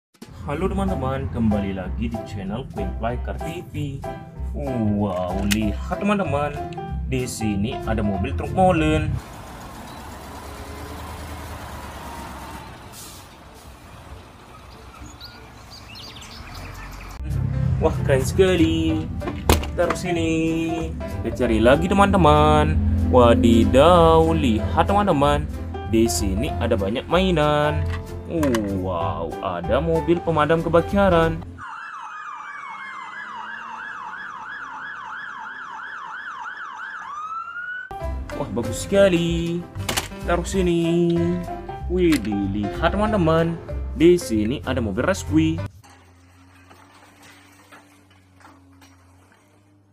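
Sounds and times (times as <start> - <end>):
road noise: 0.2 - 49.9
truck engine rumble: 0.2 - 49.9
fire engine siren: 9.2 - 14.2, 31.6 - 38.0.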